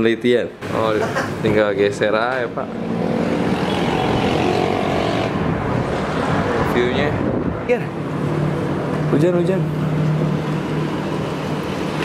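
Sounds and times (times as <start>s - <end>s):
traffic rumble and hiss: 0.0s - 12.0s.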